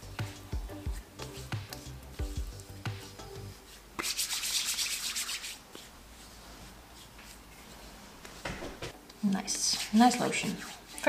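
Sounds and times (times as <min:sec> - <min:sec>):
hands rubbing lotion: 0:00.0 - 0:09.0.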